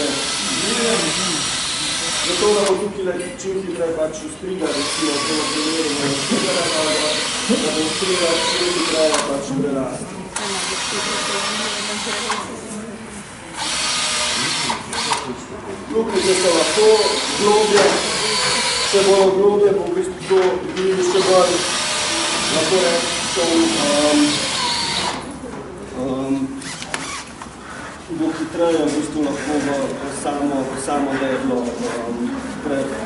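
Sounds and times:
power drill boring into wood: 0.0s - 2.8s, 4.7s - 9.4s, 10.4s - 12.4s, 13.6s - 15.3s, 16.1s - 19.3s, 21.1s - 25.3s, 26.6s - 27.3s.

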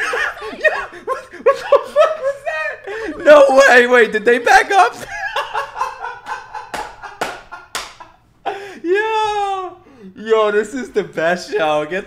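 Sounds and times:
man laughing hard: 0.0s - 3.6s, 5.0s - 9.6s
sharp hand slaps: 6.7s - 8.1s.

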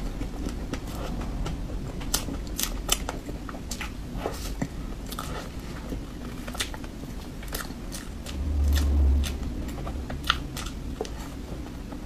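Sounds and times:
person chewing with mouth smacks: 0.1s - 12.0s.

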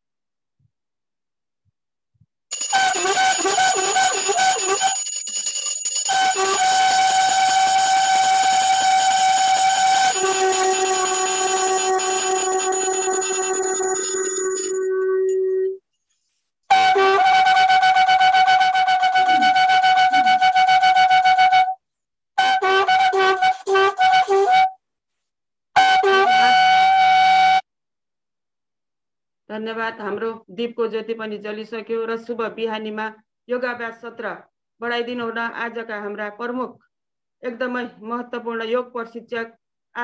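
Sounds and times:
wind instrument long notes: 2.7s - 5.0s, 6.1s - 15.8s, 16.7s - 21.8s, 22.4s - 24.8s, 25.8s - 27.6s.

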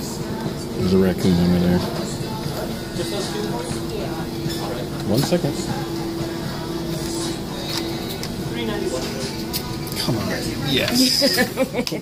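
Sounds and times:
background voices: 0.0s - 11.6s
arcade machine music: 0.0s - 11.7s.

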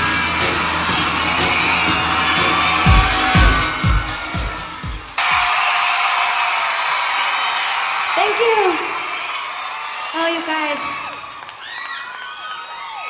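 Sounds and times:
intro music with drone and beats: 0.0s - 5.5s
concert crowd cheering: 0.0s - 13.0s
deep booming hits: 2.9s - 5.2s.

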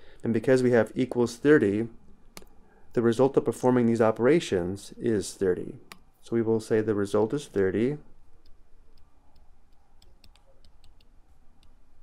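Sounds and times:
low steady hum: 0.0s - 12.0s
stylus ticking on tablet: 8.4s - 11.8s.

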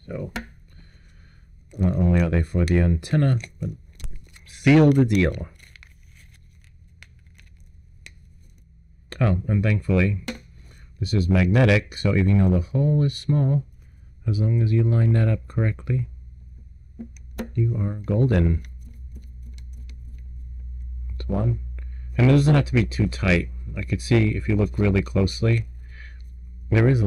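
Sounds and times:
low steady hum: 0.0s - 27.0s.

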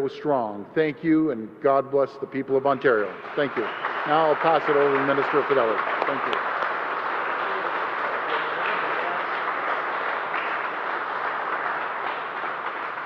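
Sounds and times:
small group applauding: 2.9s - 13.0s.

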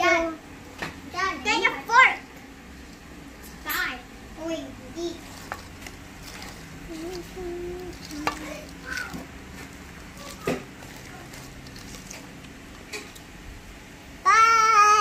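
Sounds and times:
utensil stirring batter: 1.5s - 13.4s.

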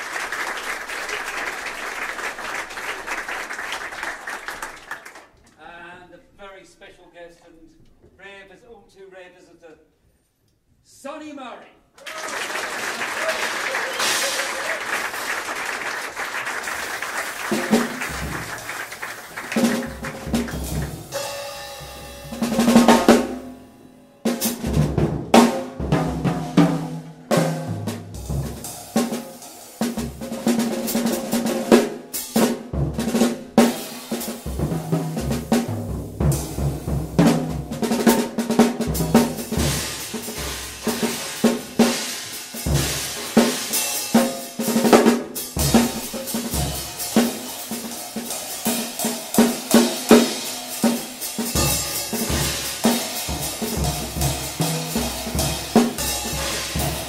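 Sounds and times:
drum kit playing: 13.6s - 57.0s.

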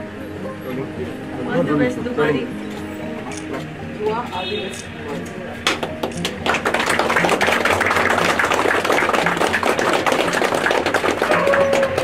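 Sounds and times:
people clapping: 5.6s - 12.0s.

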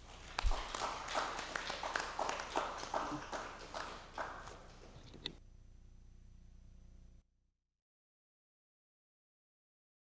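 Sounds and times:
small audience applause: 0.0s - 5.0s.

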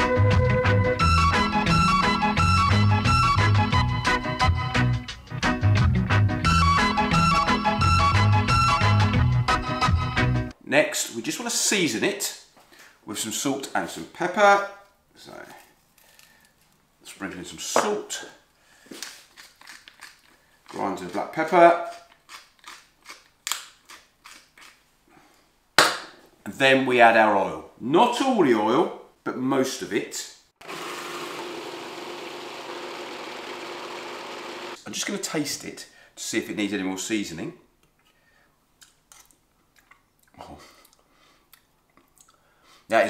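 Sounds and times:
food processor motor running: 30.6s - 34.8s.

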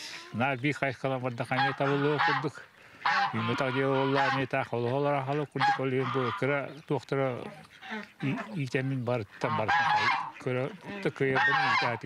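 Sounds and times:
man talking: 0.0s - 2.7s, 3.3s - 7.6s, 8.2s - 12.0s
geese honking: 0.0s - 12.0s.

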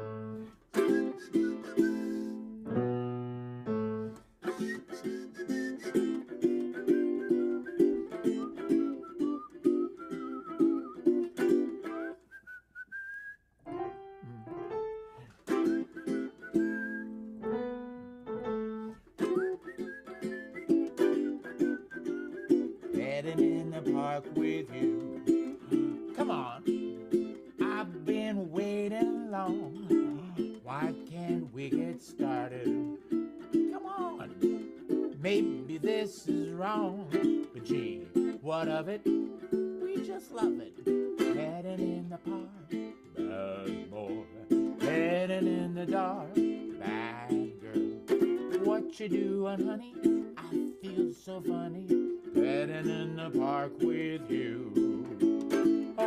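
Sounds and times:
ukulele strumming: 0.0s - 56.0s
whistled melody: 0.0s - 56.0s
piano notes: 2.4s - 4.7s, 13.6s - 15.8s, 16.6s - 19.4s.

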